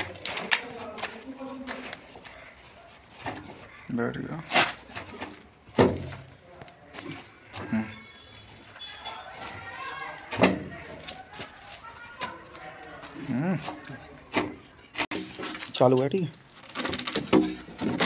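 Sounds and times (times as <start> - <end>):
person speaking: 0.0 - 2.6.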